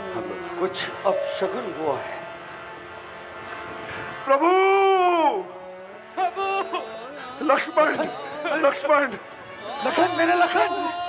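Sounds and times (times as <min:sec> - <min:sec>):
background drone with held tones: 0:00.0 - 0:11.0.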